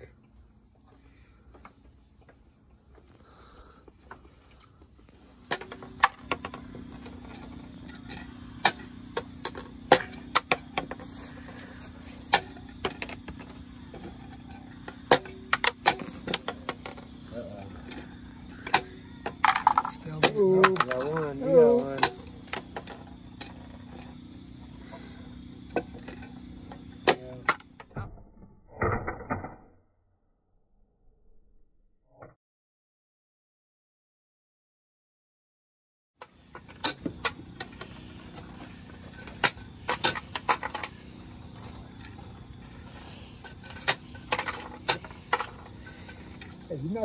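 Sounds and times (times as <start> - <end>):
low hum: 0.0 - 32.2, 36.2 - 46.9
plastic chips clattering on table: 18.6 - 23.6, 36.8 - 45.7.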